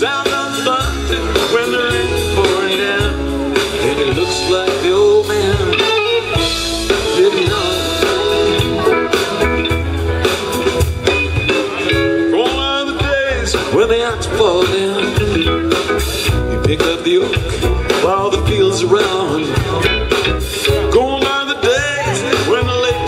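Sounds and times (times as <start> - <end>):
bass and drums: 0.0 - 23.0
lead guitar with bending notes: 0.0 - 23.0.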